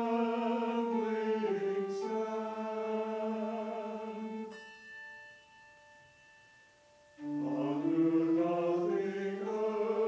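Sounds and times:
small choir singing slowly: 0.0 - 4.8, 7.2 - 10.0.

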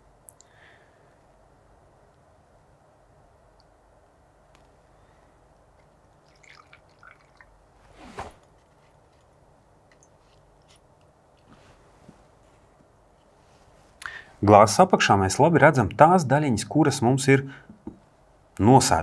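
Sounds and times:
water pouring and dripping: 5.8 - 7.6.

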